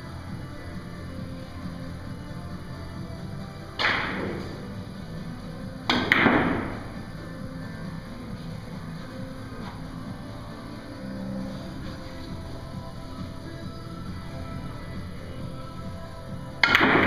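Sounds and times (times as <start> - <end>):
background music: 0.0 - 17.0
billiard balls colliding: 3.6 - 10.0, 16.5 - 17.0
cue striking billiard ball: 3.8 - 4.6, 5.8 - 7.0, 16.6 - 17.0.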